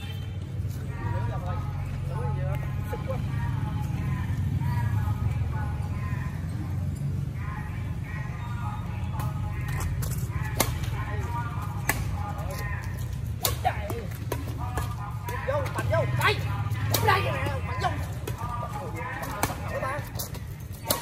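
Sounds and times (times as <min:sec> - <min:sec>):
rackets hitting shuttlecock: 0:09.1 - 0:21.0.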